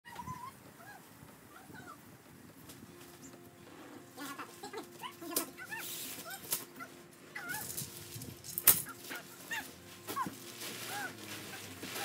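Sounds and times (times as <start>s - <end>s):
sharp rustles or knocks: 7.5s - 12.0s.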